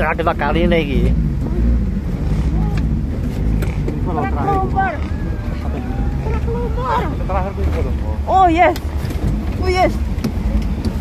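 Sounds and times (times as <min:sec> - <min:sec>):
vehicle engine running: 0:00.0 - 0:11.0
people calling out: 0:04.1 - 0:07.3.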